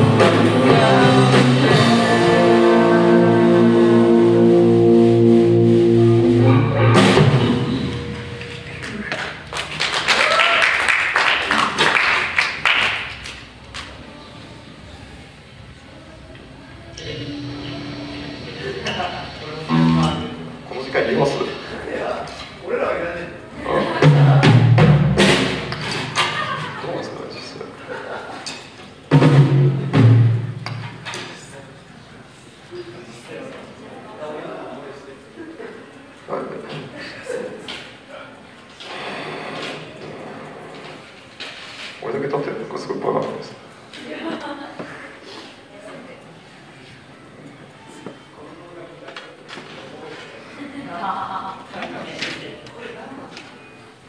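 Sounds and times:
heavy bass and drum hits: 0.0s - 8.8s, 24.0s - 26.1s, 29.1s - 30.9s
rock band chord ringing: 0.0s - 9.0s, 17.0s - 21.4s
audience clapping: 8.4s - 13.9s
audience shouts: 10.1s - 10.9s.

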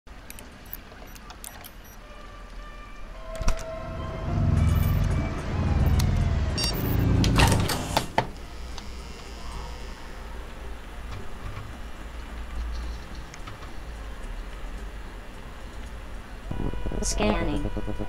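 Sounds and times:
electronic clicks and beeps: 0.3s - 2.0s, 4.6s - 7.1s, 16.5s - 18.0s
low synth drone: 2.0s - 7.6s, 16.5s - 18.0s
noise burst: 16.2s - 18.0s.

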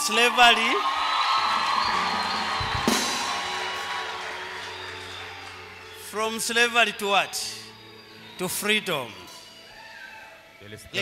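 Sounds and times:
cymbal crash: 1.4s - 5.1s
cymbals ringing: 1.4s - 9.8s.

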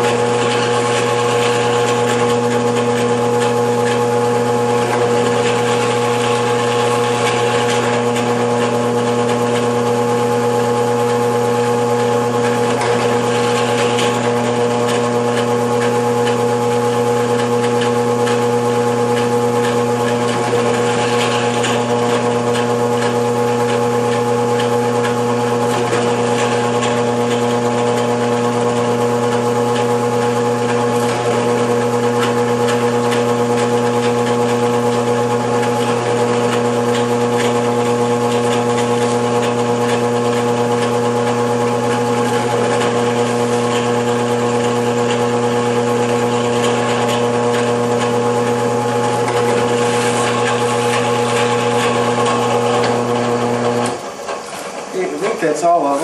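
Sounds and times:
drill press motor humming: 0.0s - 56.0s.

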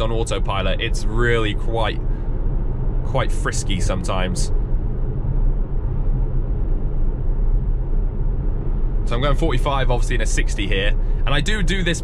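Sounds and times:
low road rumble in car cabin: 0.0s - 12.0s.

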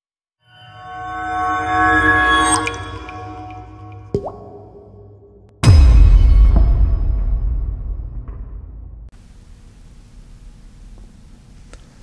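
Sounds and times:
ambient intro music: 0.6s - 9.1s
water drop plop: 2.5s - 5.4s.

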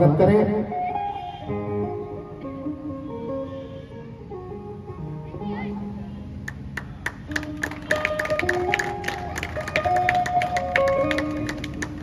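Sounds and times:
instrumental music held notes: 0.4s - 12.0s
hand clapping: 6.4s - 12.0s.

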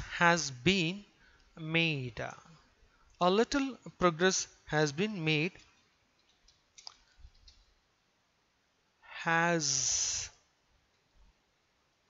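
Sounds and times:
computer keyboard clicks: 6.2s - 7.6s.

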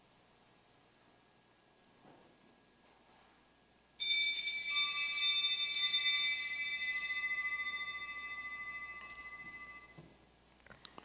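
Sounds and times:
high clear bells ringing: 4.0s - 10.0s.

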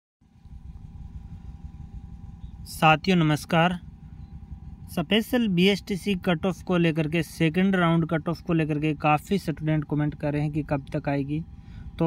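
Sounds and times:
faint steady hum: 0.2s - 12.0s
low background rumble: 0.2s - 12.0s.

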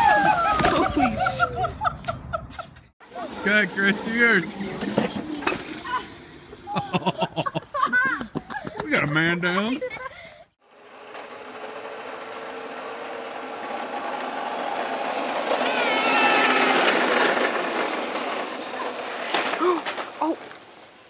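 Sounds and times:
mini dirt bike engine buzzing: 3.1s - 7.1s, 10.6s - 20.9s.

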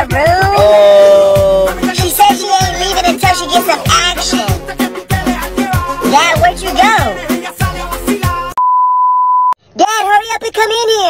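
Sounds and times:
music with singing: 0.0s - 8.6s
person speaking: 0.4s - 4.6s, 6.0s - 7.3s
censor beep: 8.6s - 9.6s.

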